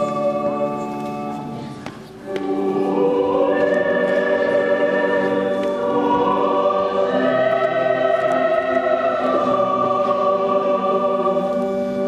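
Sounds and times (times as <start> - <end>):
choir singing a slow hymn: 0.0 - 12.0.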